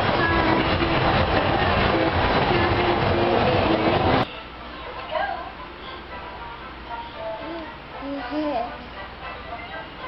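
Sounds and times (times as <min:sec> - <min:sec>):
carousel loud steady noise: 0:00.0 - 0:10.0.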